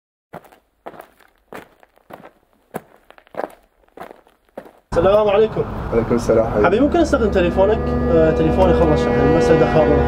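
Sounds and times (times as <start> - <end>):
footsteps on concrete sidewalk: 0.3 - 5.2.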